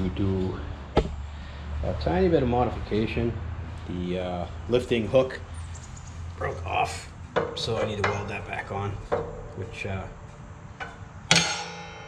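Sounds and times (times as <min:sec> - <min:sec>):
metal hook clanking on steel plate: 0:10.8 - 0:12.0.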